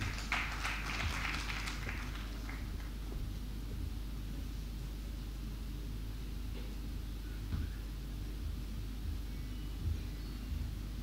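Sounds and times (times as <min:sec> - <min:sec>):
sound system low hum: 0:00.0 - 0:11.0.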